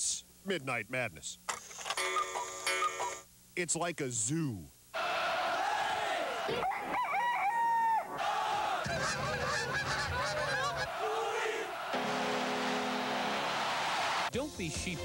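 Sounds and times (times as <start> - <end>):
crowd-like din with animal cries: 5.0 - 12.0
crowing call: 5.0 - 12.0
geese honking: 8.2 - 14.2.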